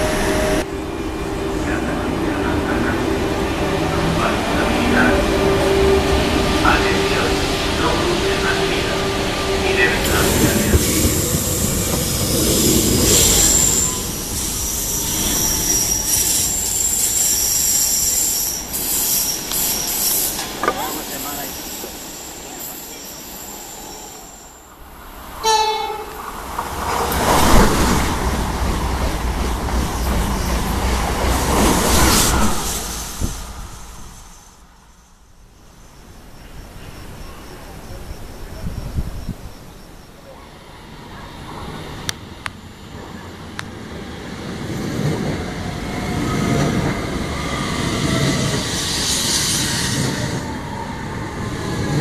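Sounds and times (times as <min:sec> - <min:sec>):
train horn: 0:00.0 - 0:14.2, 0:25.4 - 0:26.2
train passing with loud rush: 0:00.0 - 0:52.0
train rumble: 0:00.0 - 0:52.0
train wheels squealing: 0:04.2 - 0:24.7, 0:44.9 - 0:52.0.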